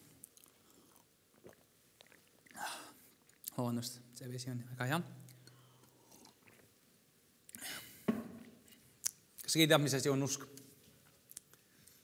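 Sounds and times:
sipping and swallowing water: 0.2s - 3.6s.

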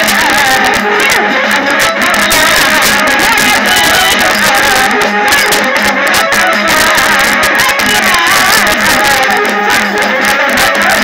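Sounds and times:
fast drum strokes: 0.0s - 11.0s
woman singing into microphone: 0.0s - 11.0s.

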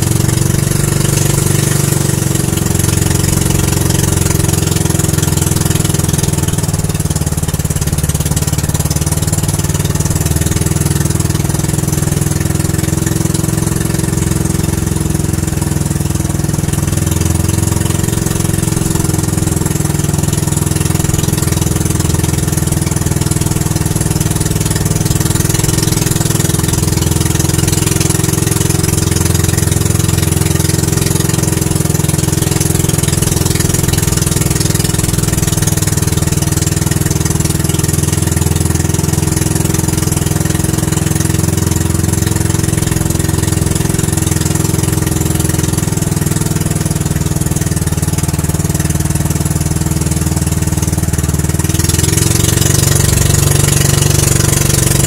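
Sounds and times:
boat engine running: 0.0s - 55.0s
rushing water: 0.0s - 55.0s.

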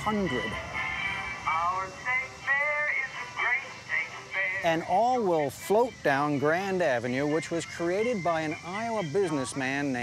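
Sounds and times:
recorded song with singing: 0.1s - 10.0s.

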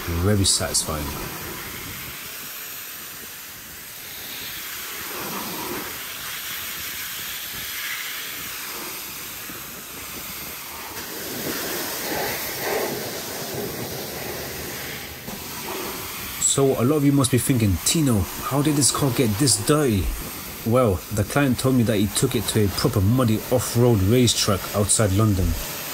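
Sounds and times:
pressure washer spraying water: 0.0s - 25.9s.

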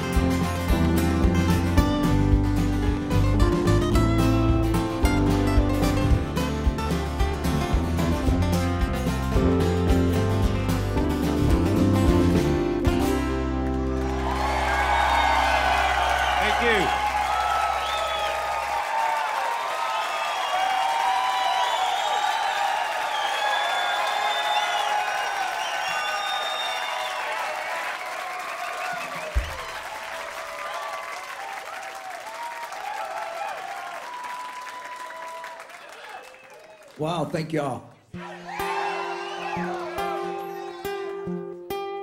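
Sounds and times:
audience applauding and cheering: 0.0s - 41.6s
whoops and whistles: 15.0s - 18.6s, 20.1s - 27.3s, 28.8s - 29.8s, 38.4s - 40.2s.

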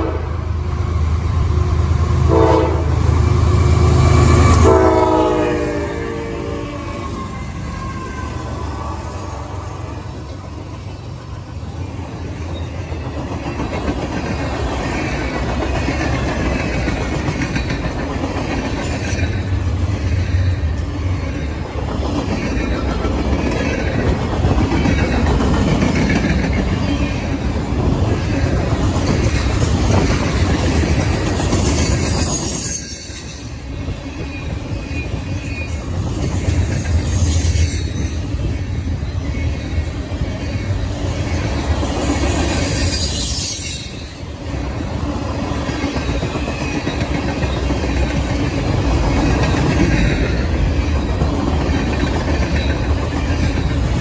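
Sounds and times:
locomotive horn chord: 0.0s - 0.5s, 2.3s - 3.1s, 4.5s - 6.9s
train wheels clattering over rail joints: 12.5s - 38.0s, 45.6s - 54.0s.

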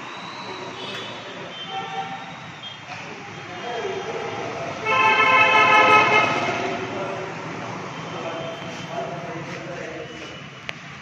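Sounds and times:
horn steady note: 4.8s - 6.9s.

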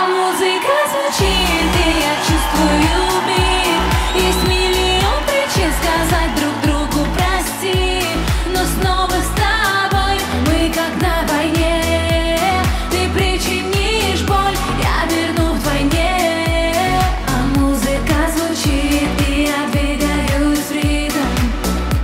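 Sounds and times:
dance-pop song: 0.0s - 22.0s
woman singing: 0.0s - 22.0s.

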